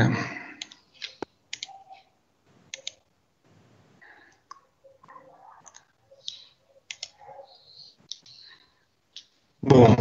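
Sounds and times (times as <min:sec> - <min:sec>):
computer mouse clicks: 0:00.6 - 0:03.1, 0:04.3 - 0:09.3.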